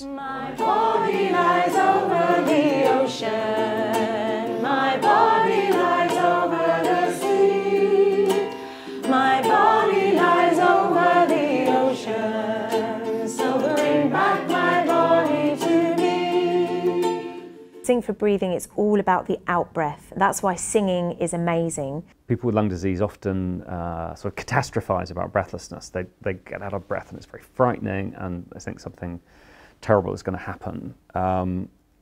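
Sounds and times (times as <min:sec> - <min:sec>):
group singing: 0:00.0 - 0:17.6
ukulele: 0:00.0 - 0:18.0.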